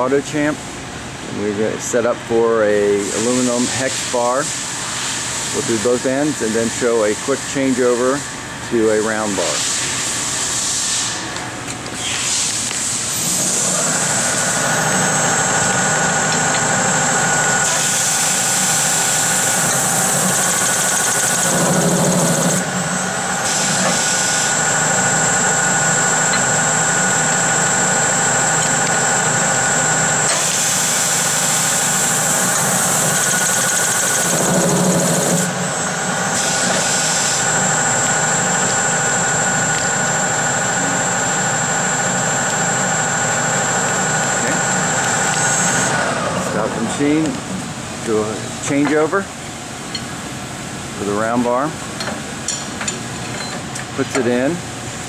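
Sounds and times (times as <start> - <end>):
machine motor whine: 9.3 - 47.8
metal cutting noise: 12.2 - 41.7.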